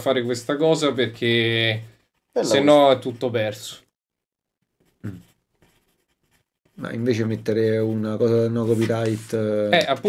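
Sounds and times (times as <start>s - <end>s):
pencil scratching on paper: 0.0s - 3.7s, 4.6s - 9.6s.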